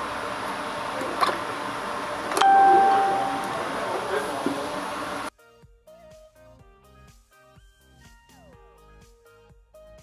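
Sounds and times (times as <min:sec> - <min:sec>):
steady background hum: 0:00.0 - 0:05.3
bell ding ringing tone: 0:02.4 - 0:03.8.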